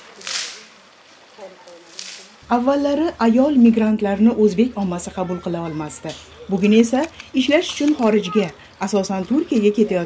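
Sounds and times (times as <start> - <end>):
water splashing on pavement: 0.0 - 10.0.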